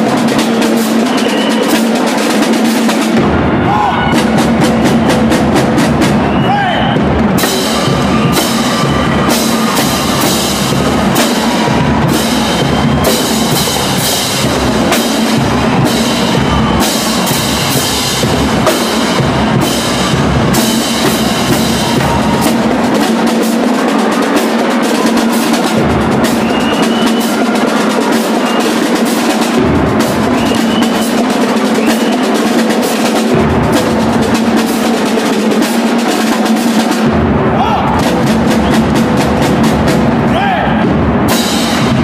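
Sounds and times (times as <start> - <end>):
cymbals: 0.0 - 42.0
snare drums playing: 0.0 - 42.0
bass drums: 3.1 - 23.3, 33.2 - 35.0, 37.0 - 42.0.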